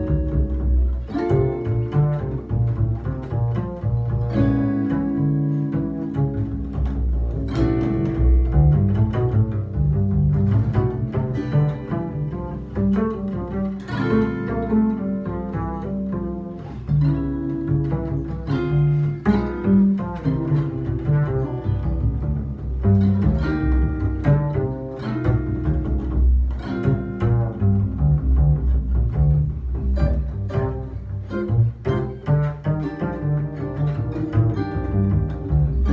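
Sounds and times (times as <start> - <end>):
plucked double bass: 0.0 - 35.9.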